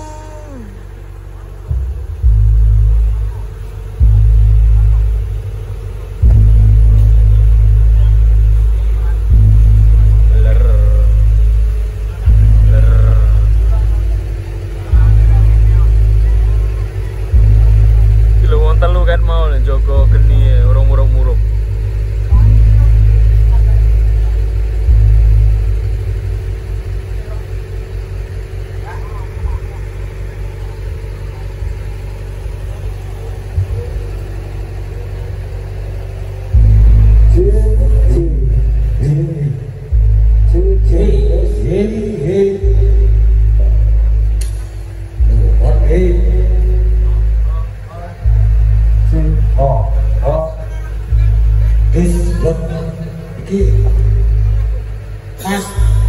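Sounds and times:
short voice: 0.0 - 1.0
low fluttering rumble: 0.0 - 56.0
loud deep booms: 0.8 - 27.2, 36.5 - 39.0.

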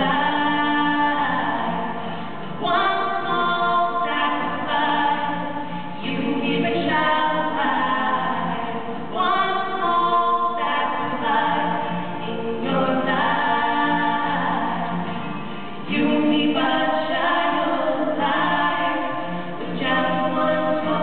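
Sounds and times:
two singers singing: 0.0 - 21.0.

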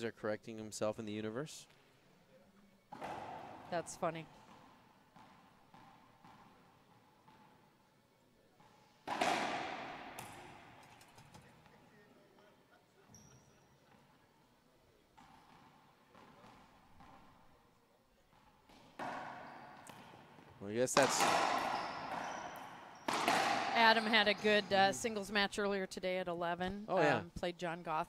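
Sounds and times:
racquetball hits echoing: 2.9 - 7.8, 8.6 - 11.6, 15.2 - 17.5, 18.3 - 25.2.

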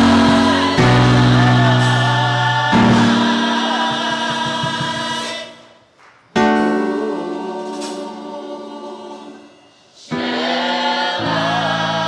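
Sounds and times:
instrumental accompaniment: 0.0 - 5.5
gospel choir singing: 0.0 - 12.0.

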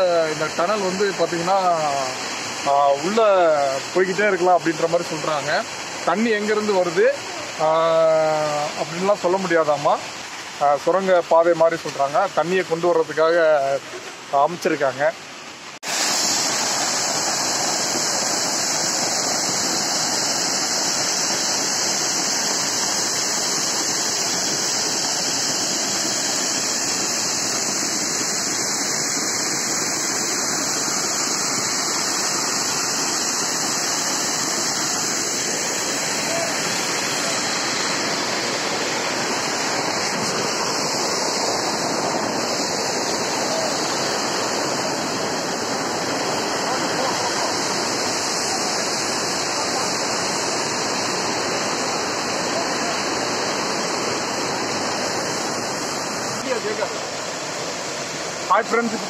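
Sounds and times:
small waterfall splashing: 0.0 - 59.0.

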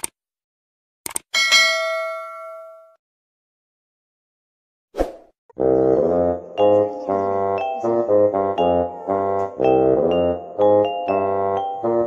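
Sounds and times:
notification bell ding: 1.4 - 3.0.

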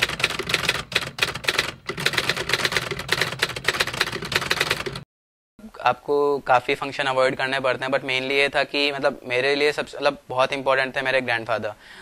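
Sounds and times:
typewriter keystrokes clattering: 0.0 - 5.0.

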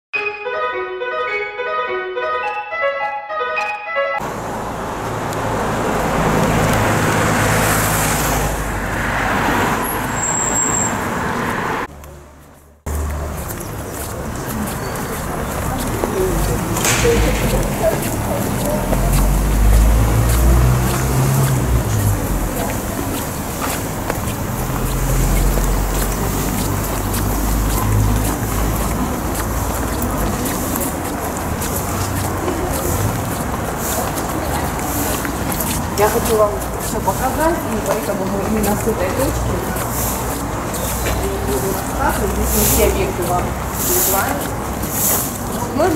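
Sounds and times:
cars driving past: 4.2 - 45.9.

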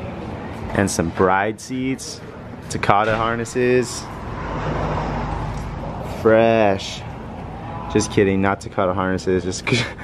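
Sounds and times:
steady low hum: 1.7 - 8.0
vehicle passing: 3.0 - 8.3.

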